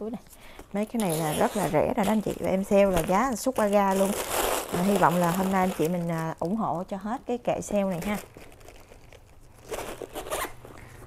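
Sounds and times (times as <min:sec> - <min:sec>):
leather handbag rustling: 0:01.0 - 0:06.2, 0:07.9 - 0:10.7.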